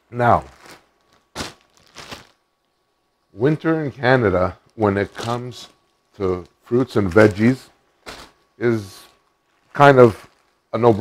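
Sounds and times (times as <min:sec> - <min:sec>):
plastic bag crinkling: 0:00.2 - 0:02.7, 0:04.6 - 0:11.0.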